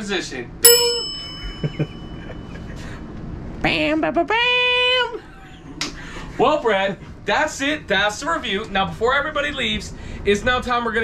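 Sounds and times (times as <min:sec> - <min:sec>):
bell-like ding: 0:00.6 - 0:02.6.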